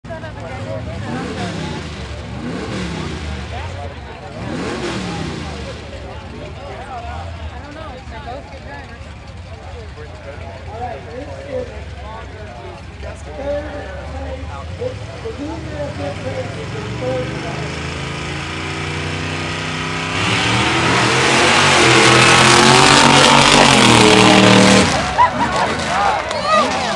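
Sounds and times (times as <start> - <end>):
murmur of crowd voices: 0.0 - 26.9
truck engine revving: 0.1 - 26.9.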